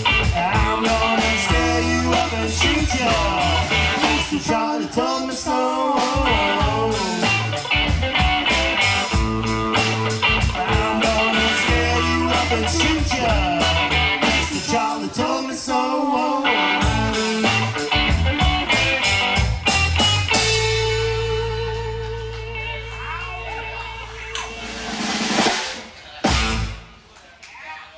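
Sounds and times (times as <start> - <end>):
drums hitting steady beat: 0.0 - 4.5, 6.0 - 15.1, 16.6 - 22.9, 23.5 - 27.1
blues-rock band playing: 0.0 - 27.0.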